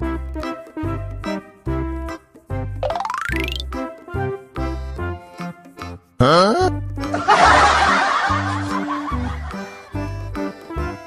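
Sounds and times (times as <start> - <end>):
cheerful children's music: 0.0 - 11.0
laughter: 7.1 - 10.0.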